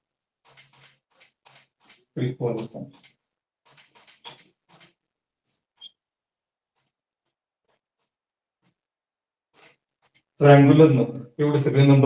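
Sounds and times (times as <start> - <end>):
marker scratching on whiteboard: 2.9 - 6.0, 9.5 - 10.4
marker squeak: 4.2 - 4.5, 5.8 - 6.0.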